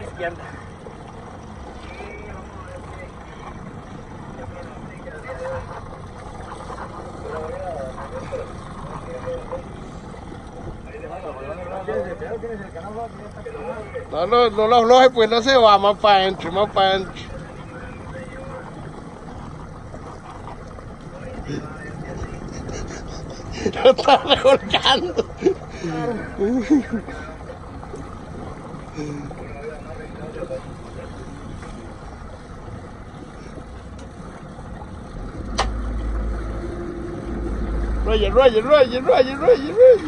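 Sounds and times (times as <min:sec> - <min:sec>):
boat motor running: 0:00.0 - 0:40.0
sea: 0:00.0 - 0:40.0.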